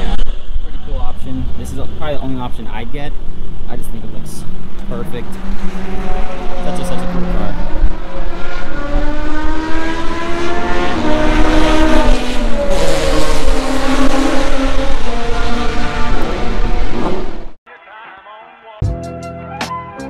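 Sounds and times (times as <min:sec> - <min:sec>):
race car engines revving: 0:00.0 - 0:17.6.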